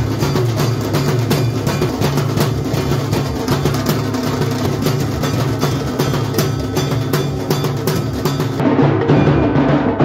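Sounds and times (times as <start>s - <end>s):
drums beating: 0.0s - 10.0s.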